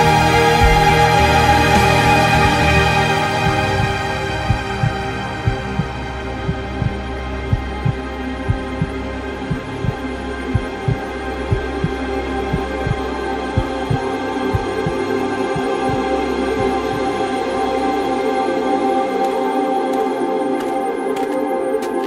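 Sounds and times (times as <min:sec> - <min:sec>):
techno music: 0:00.0 - 0:08.9, 0:09.5 - 0:13.0.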